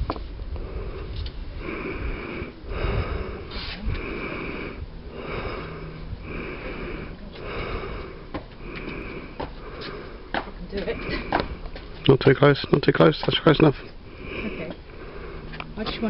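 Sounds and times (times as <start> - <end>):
hissing breath puffs: 0.6 - 12.0, 13.7 - 16.0.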